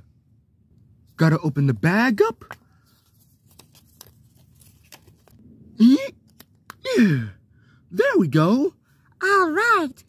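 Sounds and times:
paper rustling: 2.4 - 5.4.

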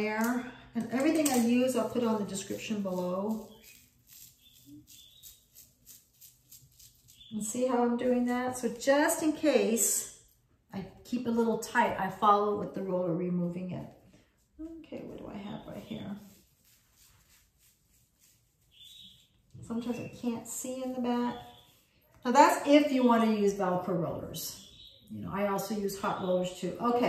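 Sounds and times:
velcro roller pulling from hair: 1.0 - 7.4
faint high chirp: 18.6 - 20.3.

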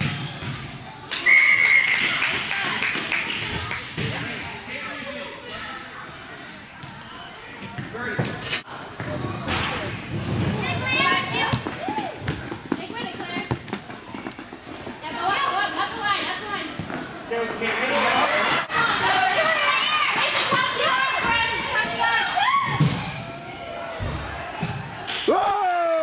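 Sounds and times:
soccer ball being kicked: 11.4 - 14.0.

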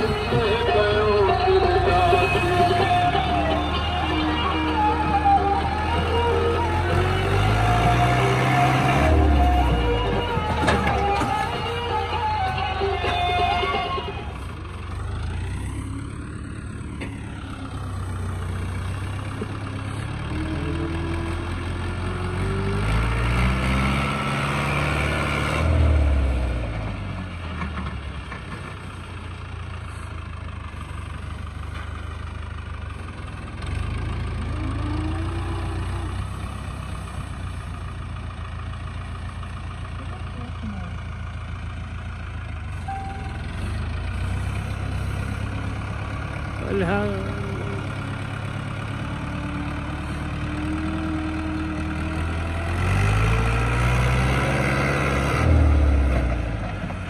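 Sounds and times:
tractor diesel engine revving: 0.0 - 57.0.

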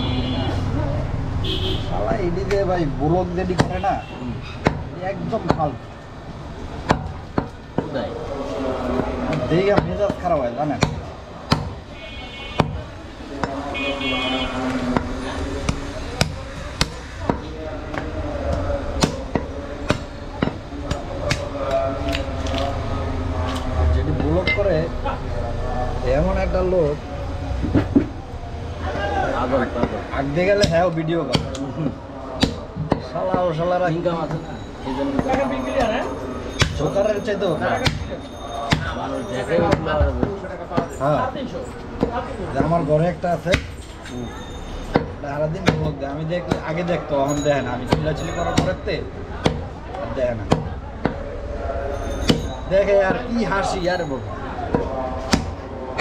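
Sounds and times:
knife chopping meat and bone: 3.5 - 3.8, 4.6 - 5.7, 9.3 - 11.8, 14.9 - 22.7, 29.8 - 33.6, 37.7 - 39.0, 44.9 - 46.8, 47.9 - 49.7, 50.4 - 51.2, 54.7 - 56.0
cleaver chopping on wooden block: 10.8 - 11.8, 30.6 - 31.6, 49.4 - 49.7.

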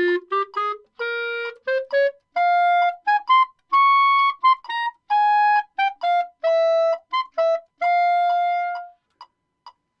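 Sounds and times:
clarinet holding a note: 0.0 - 9.0
metronome ticking: 0.0 - 10.0.

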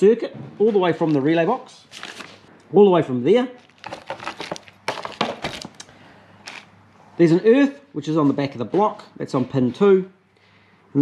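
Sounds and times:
wiring rustling: 3.5 - 6.7.

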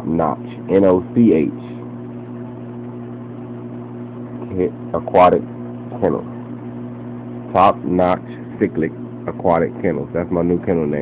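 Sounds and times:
aquarium equipment hum: 0.0 - 11.0.

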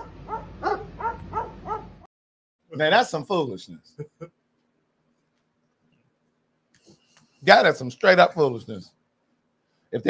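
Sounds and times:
dogs barking: 0.0 - 2.1.

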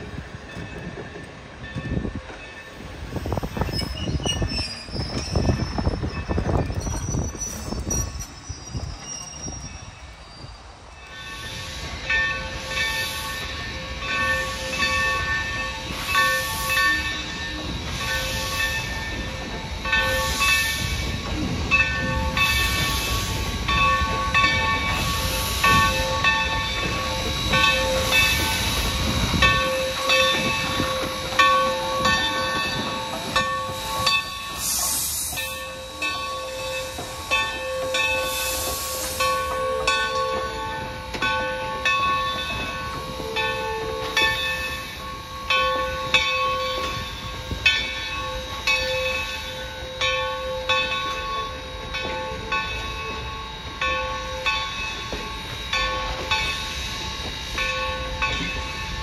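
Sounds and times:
locomotive bell ringing: 0.0 - 59.0
steam hissing: 0.0 - 59.0.

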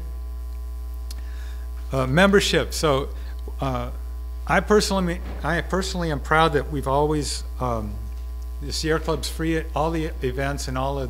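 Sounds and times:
low mains hum: 0.0 - 11.0.

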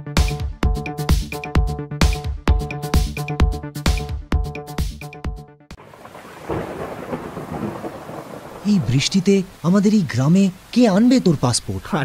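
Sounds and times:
thunder rumbling: 5.8 - 9.8
heavy rain falling: 5.8 - 12.0.

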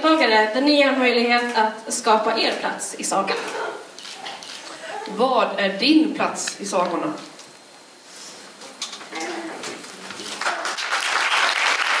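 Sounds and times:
audience applauding: 10.1 - 12.0.

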